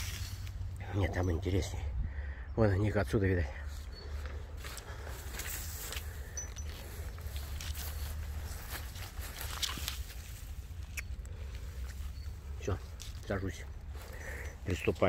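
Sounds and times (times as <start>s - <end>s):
grass rustling and brushing: 0.0s - 0.9s, 3.7s - 15.0s.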